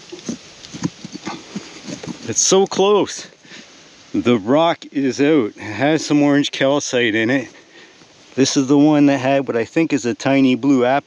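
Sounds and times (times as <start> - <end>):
rock hammer scraping soil and stones: 0.0 - 3.6.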